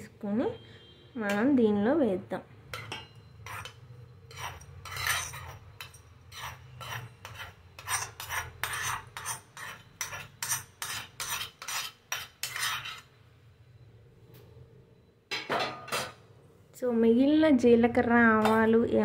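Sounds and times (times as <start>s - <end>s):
spoon scraping metal ladle: 2.7s - 13.2s.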